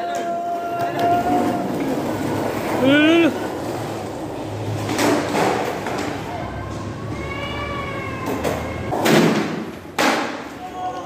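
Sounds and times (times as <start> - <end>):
skateboard wheels rolling on concrete: 0.0 - 11.0.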